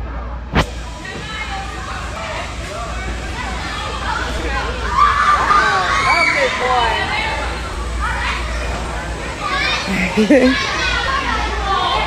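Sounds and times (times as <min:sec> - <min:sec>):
steady low hum: 0:00.4 - 0:11.8
children's play chatter: 0:00.7 - 0:12.0.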